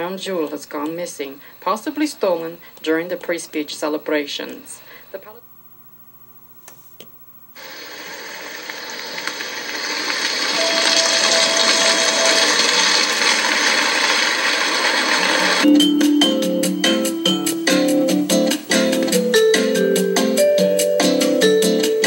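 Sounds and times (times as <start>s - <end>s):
static-like hiss: 0.0s - 22.0s.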